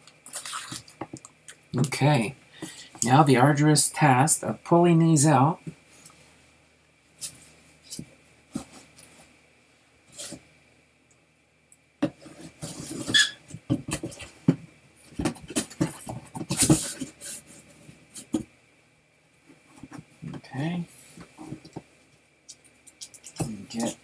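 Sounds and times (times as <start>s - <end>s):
card packs rustling and knocking: 12.0s - 17.4s.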